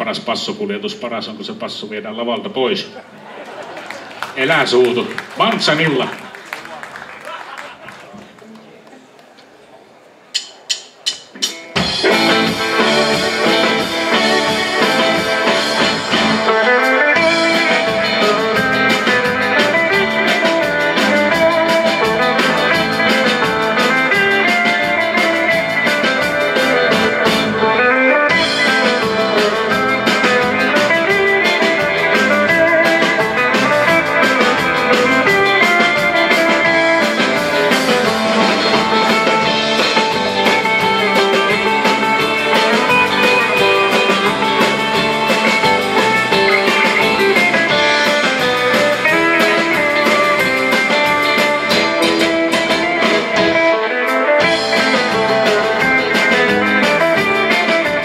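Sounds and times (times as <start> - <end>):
live instrumental band: 10.3 - 58.0.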